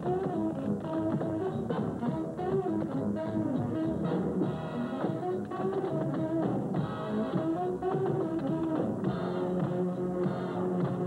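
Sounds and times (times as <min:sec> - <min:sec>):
big band swing music: 0:00.0 - 0:11.0.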